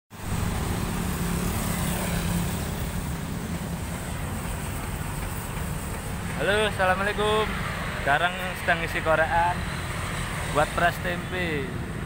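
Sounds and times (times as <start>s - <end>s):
street traffic: 0.1s - 12.0s
vehicle engine hum: 0.1s - 12.0s.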